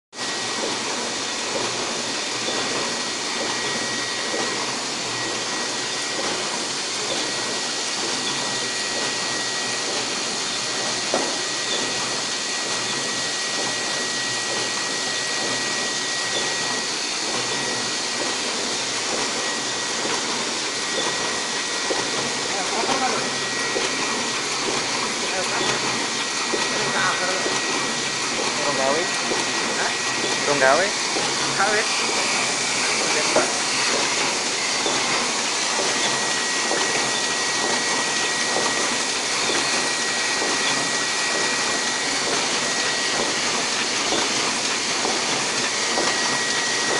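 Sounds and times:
printing press hissing: 0:00.2 - 0:46.9.

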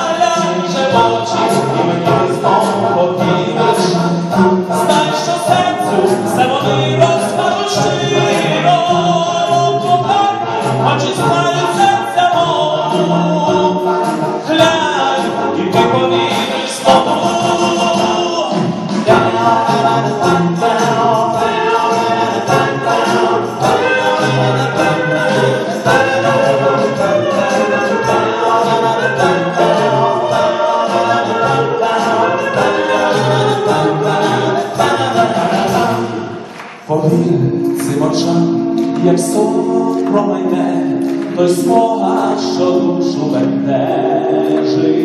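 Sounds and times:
male vocal ensemble singing: 0:00.0 - 0:45.0.

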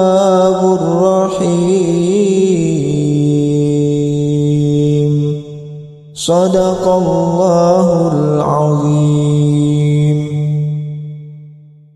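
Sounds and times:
melodic recitation voice: 0:00.0 - 0:11.6.

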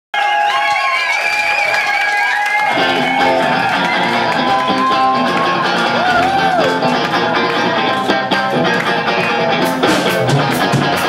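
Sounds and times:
electric guitar: 0:02.6 - 0:11.0
bass and drums: 0:02.7 - 0:11.0
live rock band playing: 0:02.7 - 0:11.0.

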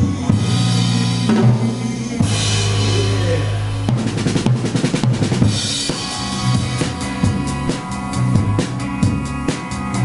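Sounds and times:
bass and guitar: 0:00.0 - 0:10.0
fast snare and drum strokes: 0:03.9 - 0:08.8.

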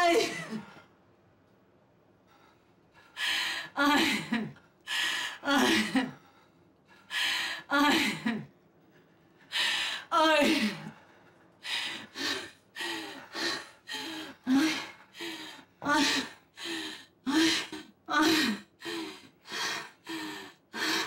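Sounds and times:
woman sobbing and gasping: 0:00.0 - 0:00.8, 0:03.6 - 0:06.2, 0:11.9 - 0:21.0.

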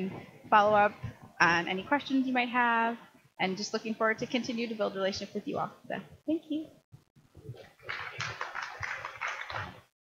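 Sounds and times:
audience applause: 0:07.7 - 0:09.9.

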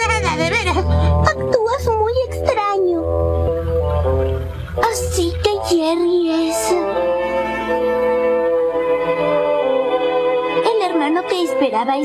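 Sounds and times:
soundtrack music with held note: 0:00.0 - 0:12.0.

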